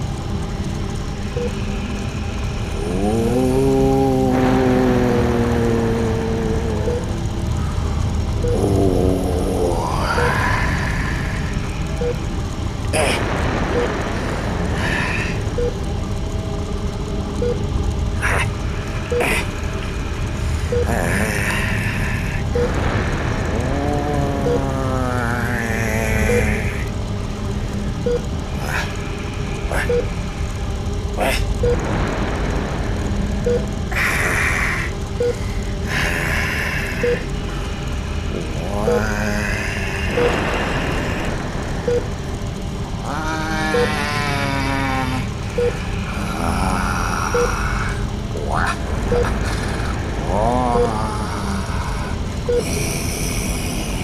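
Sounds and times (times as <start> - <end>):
wavering vocal groans: 0.0 - 17.2, 18.0 - 54.0
low rumbling hum: 0.0 - 54.0.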